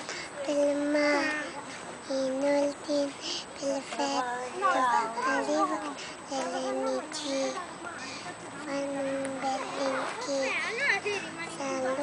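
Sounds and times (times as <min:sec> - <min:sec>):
girl singing unaccompanied: 0:00.4 - 0:08.0, 0:08.6 - 0:12.0.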